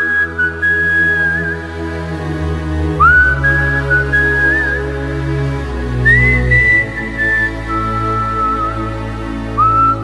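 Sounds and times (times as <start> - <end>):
sustained low accompaniment: 0.0 - 10.0
whistled melody: 0.0 - 10.0.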